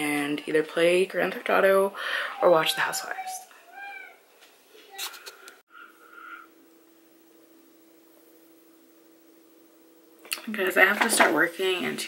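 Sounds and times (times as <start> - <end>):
faint steady hum: 0.0 - 12.0
cat meowing: 2.6 - 4.2.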